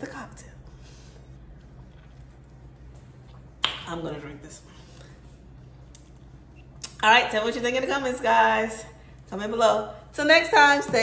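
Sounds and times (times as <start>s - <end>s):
woman speaking: 0.0s - 0.6s, 3.8s - 4.7s, 6.9s - 11.0s
faint low hum: 0.0s - 11.0s.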